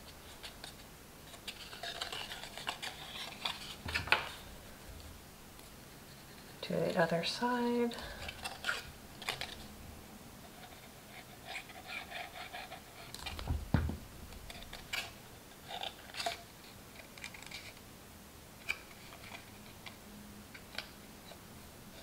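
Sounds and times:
soft thump: 13.4s - 14.1s.

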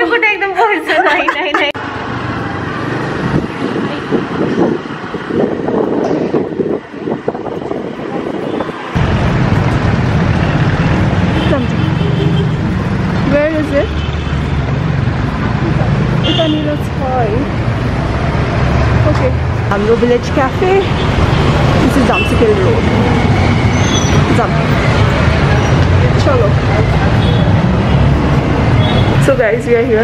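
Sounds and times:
cars passing: 0.0s - 30.0s
motorbikes passing: 0.8s - 30.0s.

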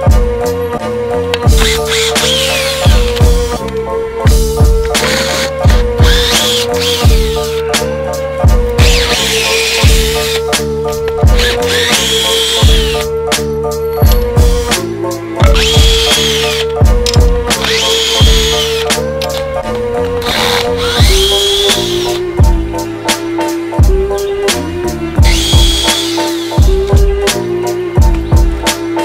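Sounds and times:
cordless drill whining: 1.5s - 3.6s, 5.0s - 7.6s, 8.8s - 10.5s, 11.3s - 13.1s, 15.4s - 16.7s, 17.6s - 19.4s, 20.2s - 22.2s, 25.2s - 26.6s
electronic music with kick drum: 14.0s - 14.8s, 22.4s - 22.8s, 26.6s - 27.4s, 28.0s - 28.8s.

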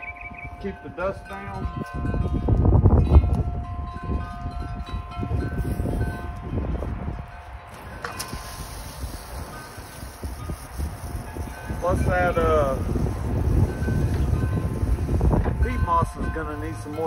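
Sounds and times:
wind chimes ringing: 0.0s - 17.0s
wind rumbling on microphone: 0.0s - 17.0s
garden hose spraying water: 7.7s - 16.9s.

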